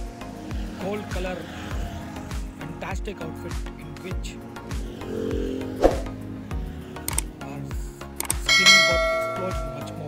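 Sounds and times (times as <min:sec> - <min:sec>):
background music with steady beat: 0:00.0 - 0:10.0
click: 0:07.1 - 0:07.3
bell ding sound effect: 0:08.5 - 0:10.0.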